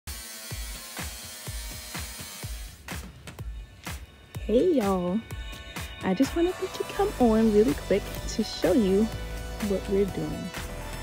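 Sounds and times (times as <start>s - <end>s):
angle grinder cutting sheet metal: 0.1s - 3.0s
background music with kick drum: 0.1s - 11.0s.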